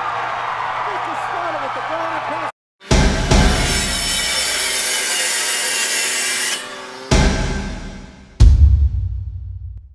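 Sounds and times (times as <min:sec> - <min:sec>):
deep impact hit: 0:07.1 - 0:09.9.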